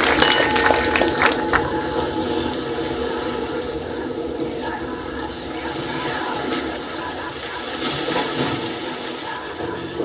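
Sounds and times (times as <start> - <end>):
marching band playing: 0.0 - 2.4.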